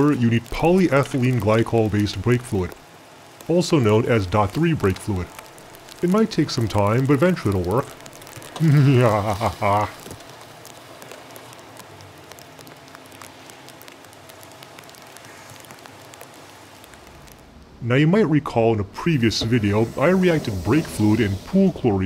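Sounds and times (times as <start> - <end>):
faint crackles: 0.0 - 22.0
steady fizzing hiss: 0.0 - 22.0.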